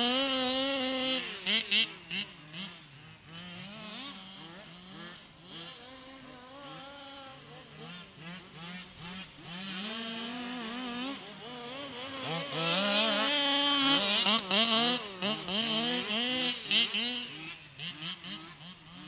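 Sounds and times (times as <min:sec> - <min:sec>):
small two-stroke engines revving: 0:00.0 - 0:19.0.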